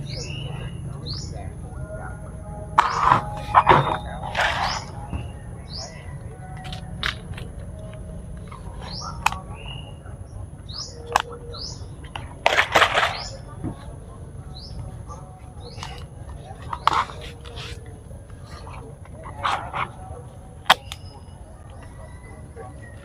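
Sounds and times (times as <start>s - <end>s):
small bird chirping: 0.0s - 1.5s, 7.8s - 13.6s
noisy bursts: 0.0s - 23.0s.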